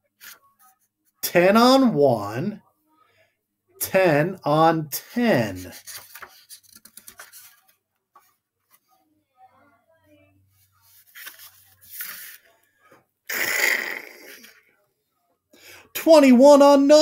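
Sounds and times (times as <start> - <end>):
book pages turning: 5.6 - 8.9, 10.8 - 12.6
paper swish of page flipping: 5.7 - 8.8, 10.8 - 12.5.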